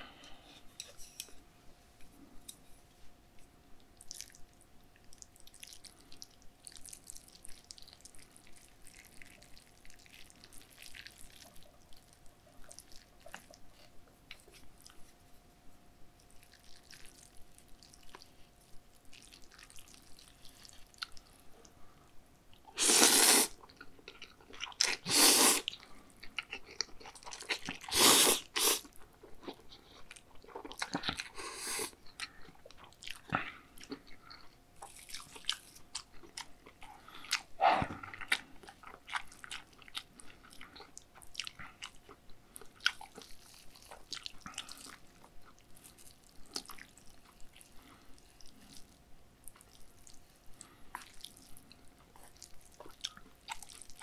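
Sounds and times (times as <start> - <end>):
wet chewing with clicks: 3.4 - 15.2, 16.2 - 21.8, 28.8 - 54.0
noodle slurping: 22.7 - 23.6, 24.9 - 25.7, 27.8 - 28.9.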